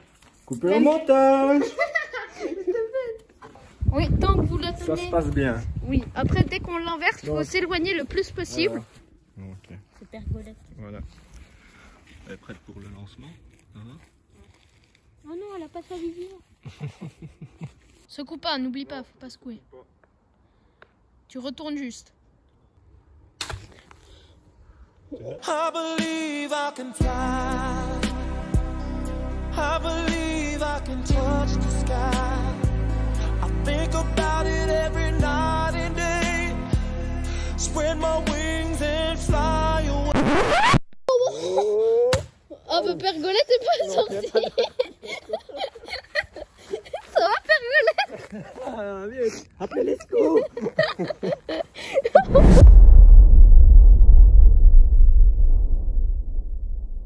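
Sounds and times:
man laughing: 1.4s - 3.2s, 16.6s - 17.8s, 41.1s - 42.0s, 43.6s - 52.3s
music: 25.4s - 40.2s
record scratch sweep: 40.1s - 40.9s
slowly rising tone: 52.2s - 57.0s.

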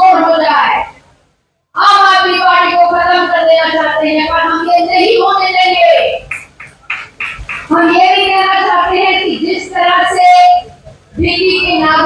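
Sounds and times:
woman speaking into a microphone: 0.0s - 1.0s, 1.8s - 6.2s, 7.7s - 12.0s.

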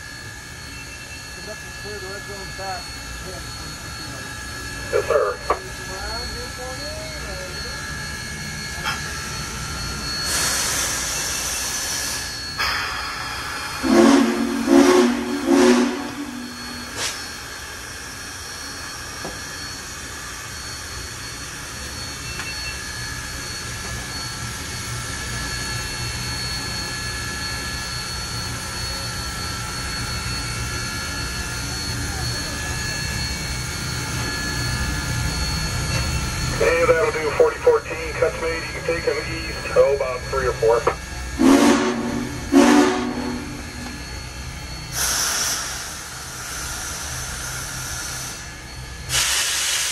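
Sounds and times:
locomotive rumble: 0.0s - 49.9s
steam hissing: 10.0s - 17.7s, 41.3s - 49.9s
low steam whistle blasts: 10.2s - 17.3s, 41.4s - 44.2s.

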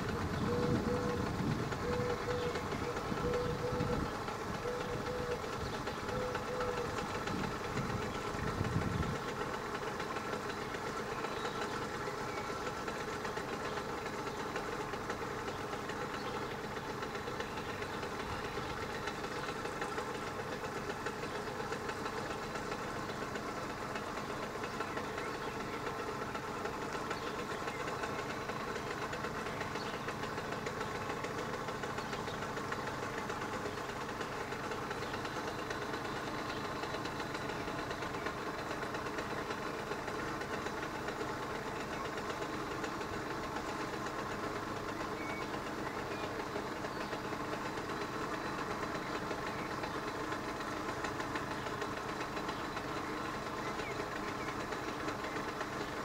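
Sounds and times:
passing train rumble: 0.0s - 56.0s.

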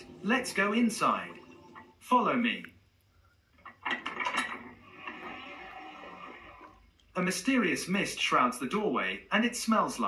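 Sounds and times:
steady hiss: 0.0s - 3.8s.

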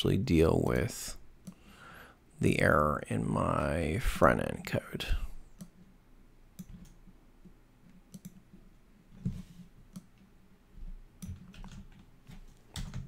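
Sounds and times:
mouse and keyboard clicks: 8.1s - 8.4s.

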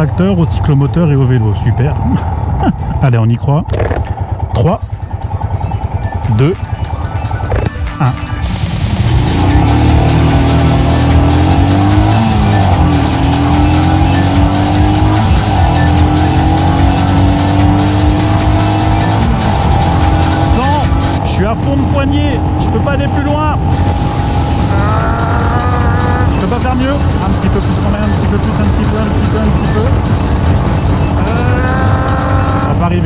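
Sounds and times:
motorcycle engine at full throttle: 0.0s - 33.0s.

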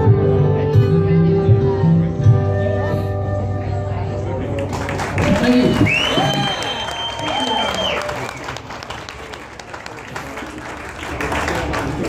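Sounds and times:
audience applauding and cheering: 4.6s - 12.0s
long high whistle: 5.8s - 8.5s.

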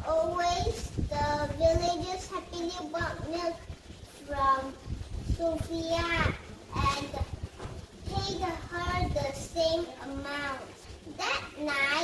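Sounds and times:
girl singing: 0.0s - 7.3s, 8.1s - 12.0s.

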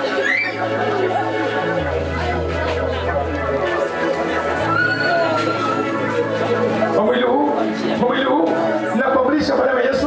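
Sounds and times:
low keyboard notes: 0.0s - 10.0s.

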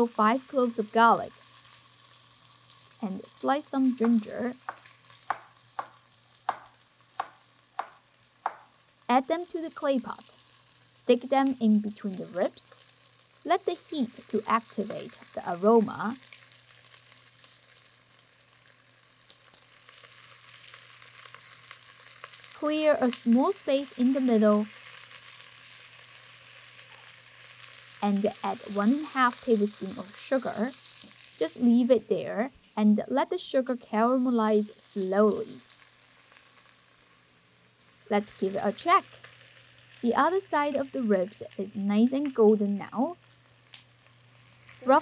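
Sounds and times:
meat sizzling in a pot: 0.0s - 45.0s
knife chopping on wooden board: 4.7s - 8.6s.

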